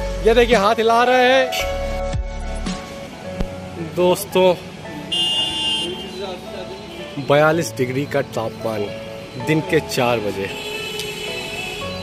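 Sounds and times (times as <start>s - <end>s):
buzzy vehicle horn: 5.1s - 7.3s, 10.4s - 12.0s.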